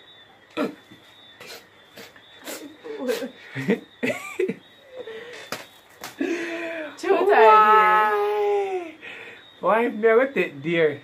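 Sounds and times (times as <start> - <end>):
stifled breathy laughter: 2.0 - 5.5.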